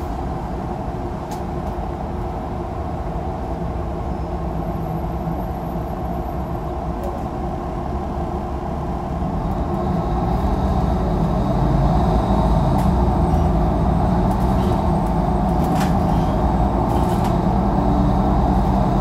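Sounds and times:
bus engine drone: 0:00.0 - 0:19.0
road noise: 0:00.0 - 0:19.0.

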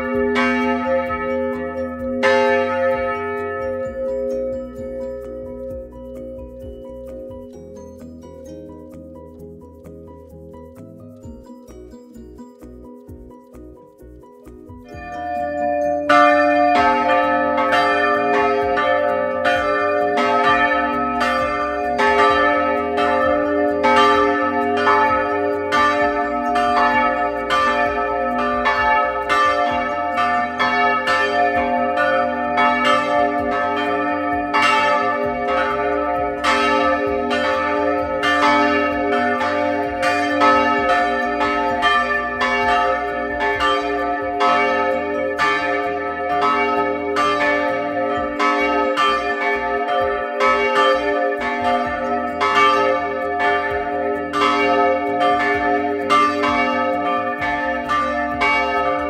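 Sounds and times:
church bells ringing: 0:00.0 - 0:09.6, 0:14.8 - 0:59.0.

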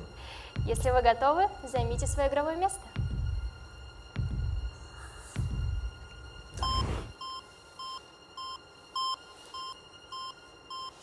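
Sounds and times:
heartbeat thuds: 0:00.6 - 0:01.2, 0:03.0 - 0:04.8, 0:05.4 - 0:07.2
short electronic beeps: 0:06.6 - 0:10.9.

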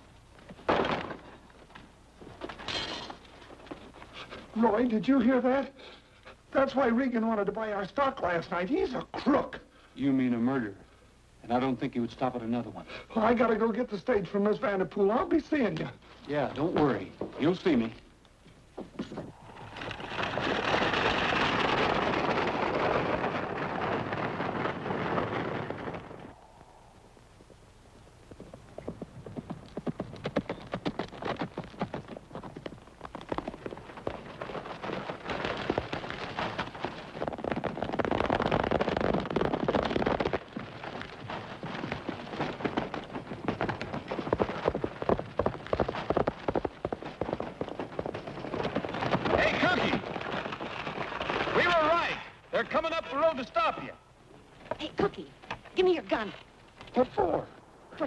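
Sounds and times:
stagecoach hooves and wheels rumbling: 0:00.0 - 0:09.4, 0:11.6 - 0:58.0
galloping horse hoofbeats: 0:18.6 - 0:26.5, 0:28.1 - 0:57.4.

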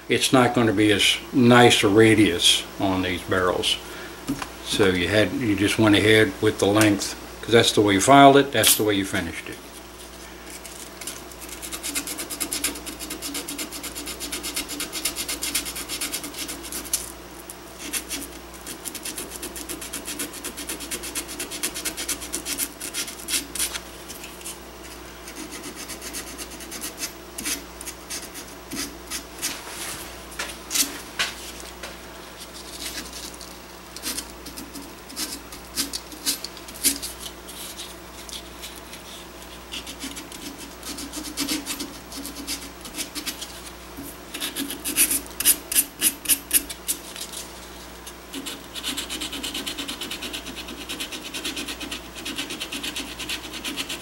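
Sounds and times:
cloth strip rubbing metal barrel: 0:32.4 - 0:47.5.

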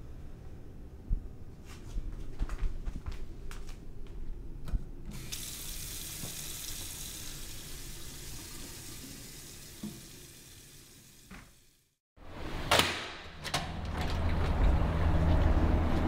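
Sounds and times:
tap water running into sink: 0:05.1 - 0:11.7.

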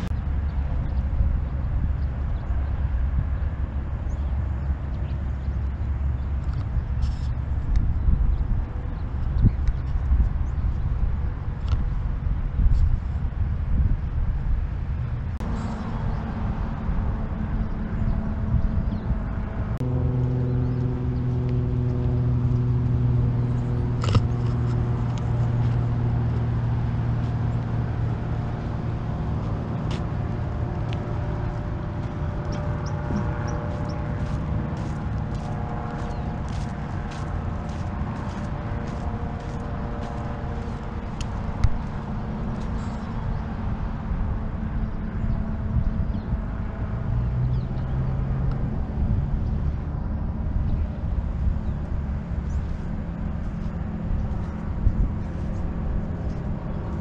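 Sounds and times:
constant rumbling background: 0:00.0 - 0:57.0
low engine hum: 0:00.0 - 0:57.0.

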